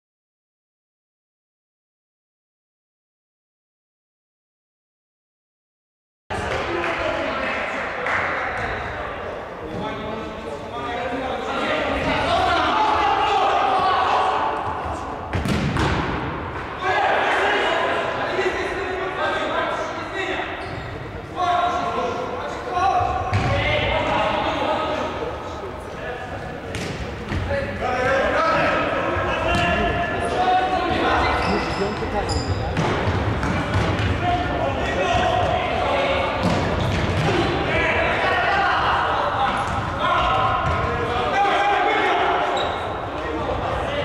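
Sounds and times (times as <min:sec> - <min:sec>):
voices calling out in echoing hall: 0:06.3 - 0:44.0.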